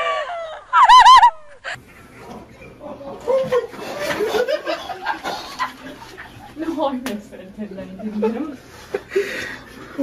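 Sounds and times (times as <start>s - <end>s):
outdoor noise: 0.0s - 7.2s.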